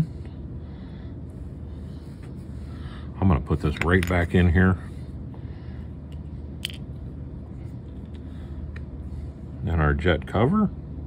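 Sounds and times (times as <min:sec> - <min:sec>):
low room hum: 0:00.0 - 0:11.0
small parts clicking: 0:06.1 - 0:06.9.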